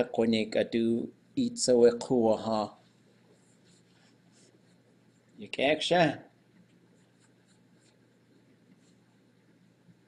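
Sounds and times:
person speaking: 0:00.0 - 0:04.7, 0:05.3 - 0:06.4
faint ticks and scratches: 0:02.7 - 0:05.6, 0:06.5 - 0:10.0.

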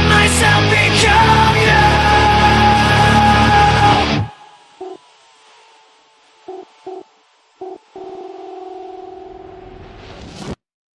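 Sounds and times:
faint hiss: 0:01.3 - 0:10.6
held fluttering synth note: 0:02.0 - 0:09.8.

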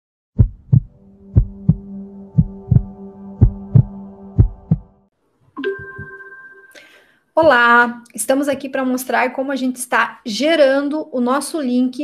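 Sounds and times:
heartbeat double thumps: 0:00.4 - 0:05.0
steady tone: 0:00.4 - 0:07.1.

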